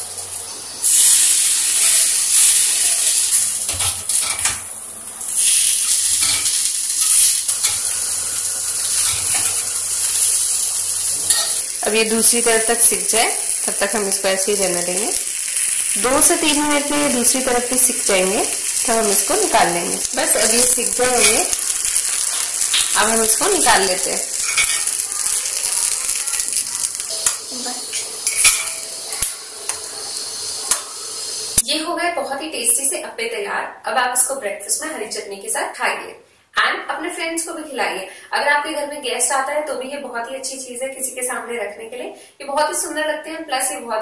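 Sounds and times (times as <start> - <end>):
batter sizzling in oil: 0.0 - 31.6
metal spoon clinking on pan: 11.3 - 11.6, 21.0 - 21.6, 24.3 - 25.0, 27.1 - 29.0.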